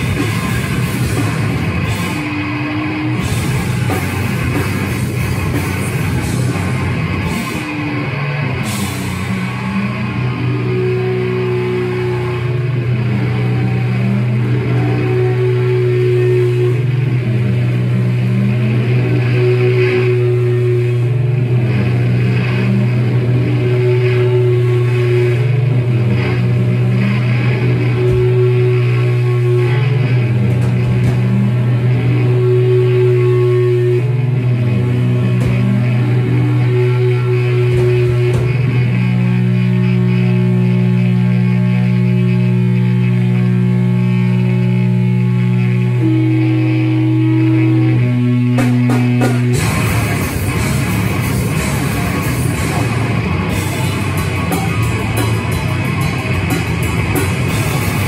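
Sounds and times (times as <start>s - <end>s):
live rock band playing: 0.0s - 58.0s
low drone note: 0.0s - 58.0s.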